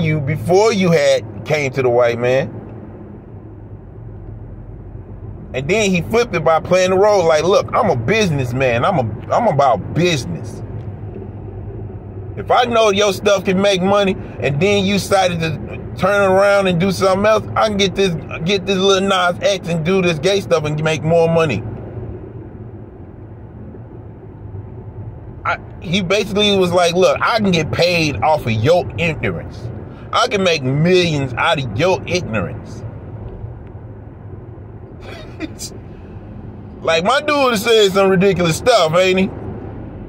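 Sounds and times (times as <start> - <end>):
car engine rumble from inside: 0.0 - 40.0
hum: 2.4 - 18.8, 20.6 - 38.4.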